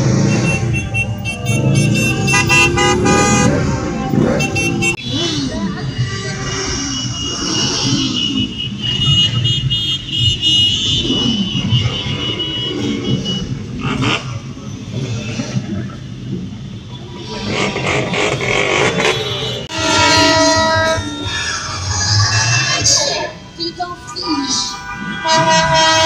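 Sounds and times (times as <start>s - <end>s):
horns honking: 0.0s - 5.0s, 6.4s - 14.1s, 18.0s - 26.0s
motorcycle engines rumbling: 0.0s - 26.0s.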